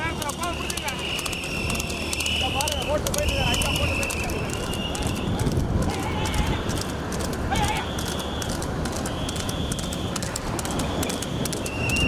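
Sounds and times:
horse hooves on asphalt: 0.0 - 12.0
people shouting: 0.0 - 12.0.

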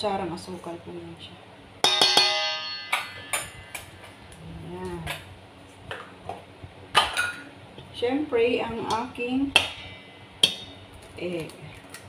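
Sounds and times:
metal spoon striking steel bowl: 1.8 - 3.9, 10.4 - 10.8.

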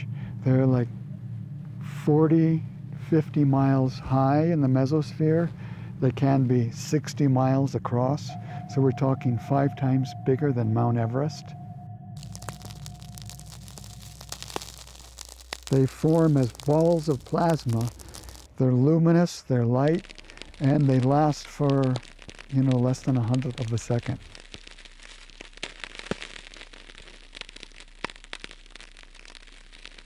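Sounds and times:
low steady hum: 0.0 - 25.8
crackling static hiss: 0.0 - 30.0
faint thin tone: 8.0 - 18.2
faint hiss: 12.2 - 26.2.

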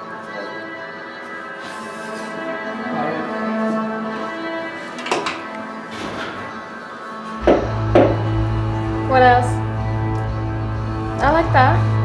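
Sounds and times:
music with held chords: 0.0 - 12.0
short knocks: 7.4 - 8.3
low bass note: 7.4 - 12.0.

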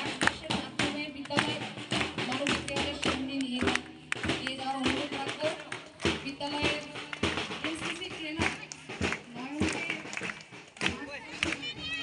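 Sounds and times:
crowd hand claps and slaps: 0.0 - 12.0
voices: 2.3 - 12.0.

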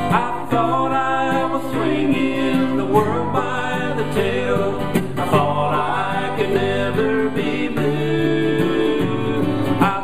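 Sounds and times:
acoustic guitar: 0.0 - 10.0
person singing: 0.0 - 10.0.

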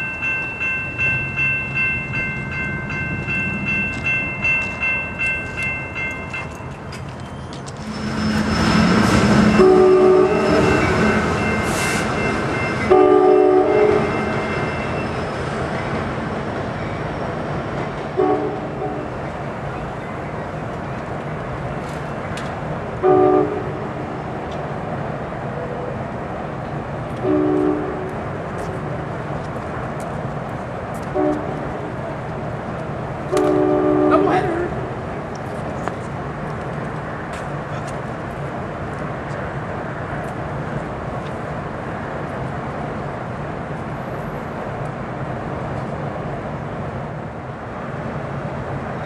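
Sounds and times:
train rumbling on rails: 0.0 - 49.0
locomotive air horn blasts: 8.4 - 12.1, 12.9 - 14.2, 18.2 - 19.1, 23.0 - 23.8, 27.2 - 28.1, 31.2 - 31.7, 33.3 - 34.6.

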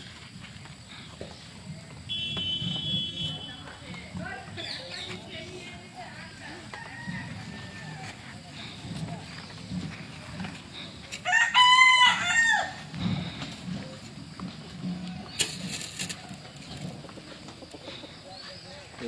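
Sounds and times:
rooster crowing: 6.5 - 8.4, 11.2 - 13.0.

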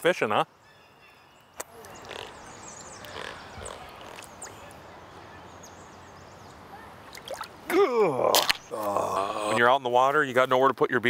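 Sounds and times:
water splashing in a creek: 1.6 - 4.9, 7.0 - 8.7.

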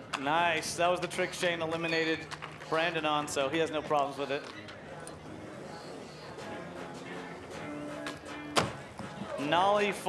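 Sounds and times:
faint music: 0.0 - 10.0
crowd murmur: 0.8 - 10.0.

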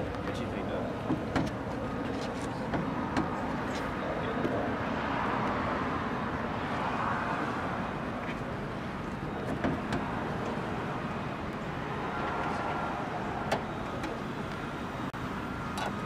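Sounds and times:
outdoor traffic noise: 0.0 - 16.0.

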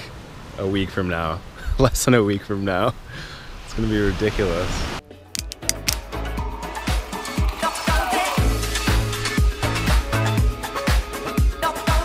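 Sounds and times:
pop music with steady beat: 5.3 - 12.0.

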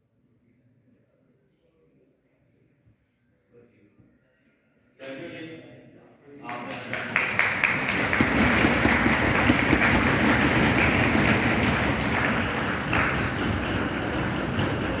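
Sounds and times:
audience applauding: 6.5 - 15.0.

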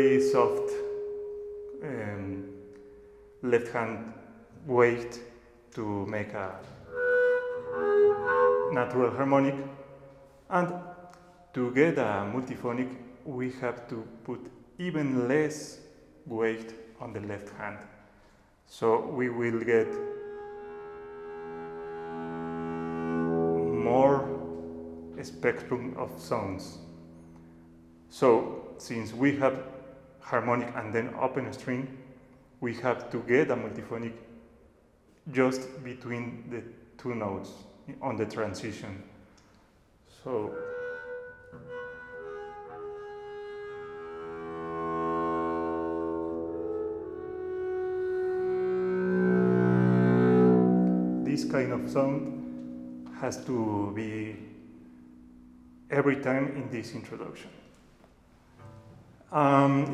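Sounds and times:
bowed double bass note: 0.0 - 3.8, 6.3 - 10.0, 19.3 - 29.6, 40.3 - 57.6, 58.5 - 59.9.

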